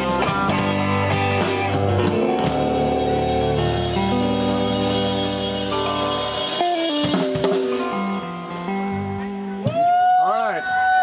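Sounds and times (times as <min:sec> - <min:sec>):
blues band playing live: 0:00.0 - 0:11.0
electric guitar held notes: 0:00.0 - 0:11.0.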